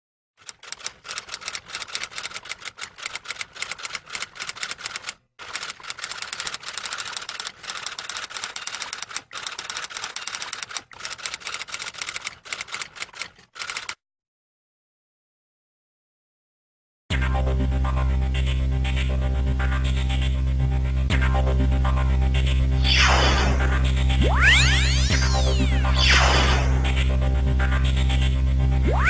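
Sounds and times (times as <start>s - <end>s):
typewriter key clacks: 0.4s - 14.0s.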